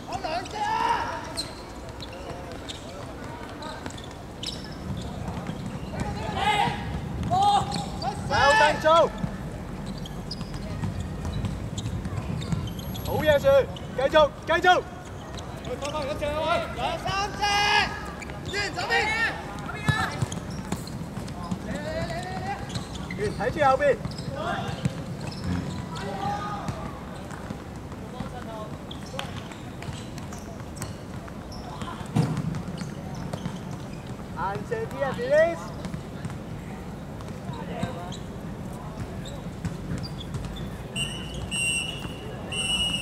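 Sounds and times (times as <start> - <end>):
ball kicked and bouncing: 4.8 - 8.0, 9.2 - 12.8, 24.0 - 26.0, 26.6 - 34.2, 39.0 - 40.8
players shouting: 5.8 - 9.3, 15.8 - 20.4.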